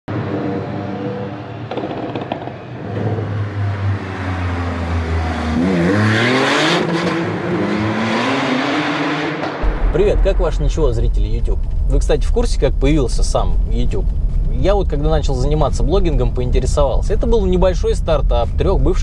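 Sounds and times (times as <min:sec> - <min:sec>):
car engine revving: 0:02.8 - 0:19.0
burst of rushing noise: 0:09.6 - 0:17.5.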